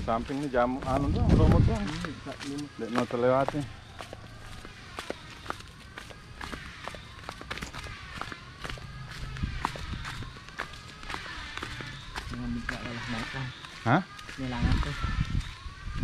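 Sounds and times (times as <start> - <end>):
footsteps on dry leaves: 0.0 - 16.0.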